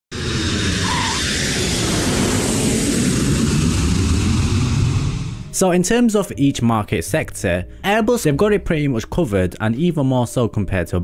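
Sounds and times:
deep rumble: 0.1s - 5.6s
loud rushing roar: 0.1s - 5.6s.

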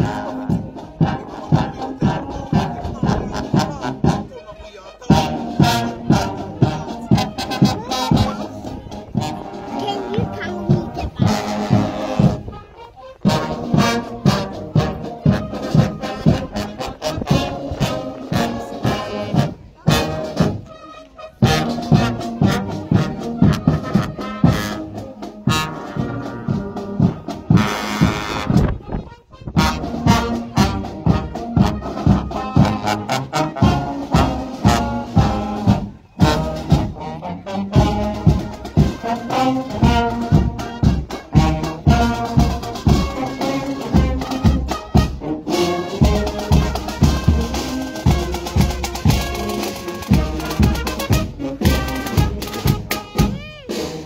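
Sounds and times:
marching drum beat: 0.0s - 12.5s, 13.1s - 20.8s, 21.4s - 28.8s, 29.5s - 54.0s
brass band playing a march: 0.0s - 54.0s.

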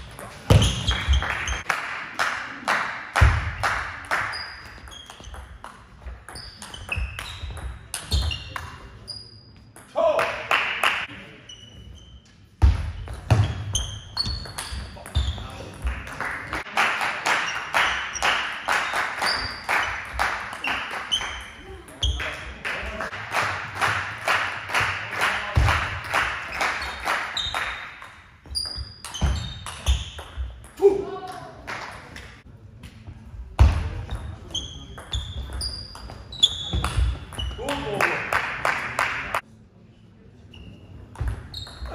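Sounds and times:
shoes squeaking on floor: 0.0s - 1.6s, 4.2s - 9.8s, 11.3s - 15.8s, 19.2s - 22.3s, 26.5s - 30.6s, 34.1s - 37.7s, 40.4s - 41.9s.

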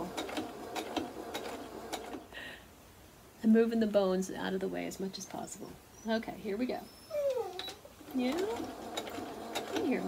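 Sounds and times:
dog whimpering: 5.9s - 6.2s, 6.8s - 7.9s.

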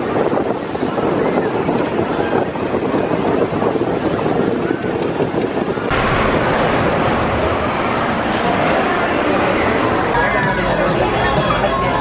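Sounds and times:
roller coaster rumbling on track: 0.0s - 12.0s.

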